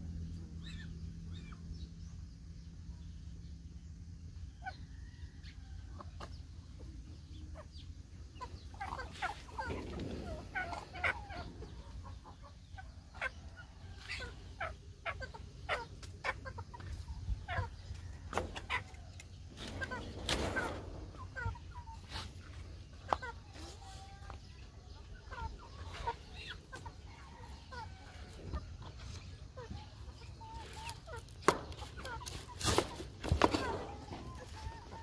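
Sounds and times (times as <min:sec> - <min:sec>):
chickens clucking: 0:00.0 - 0:35.0.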